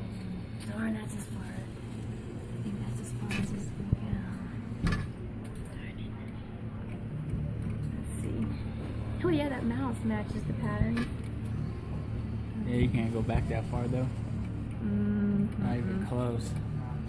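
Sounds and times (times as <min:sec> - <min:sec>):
machine hum: 0:00.0 - 0:17.0.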